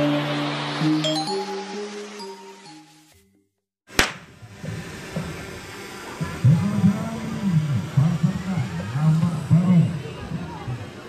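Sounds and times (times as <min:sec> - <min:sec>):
sharp click: 0:04.0 - 0:04.3
crowd and street noise: 0:04.0 - 0:11.0.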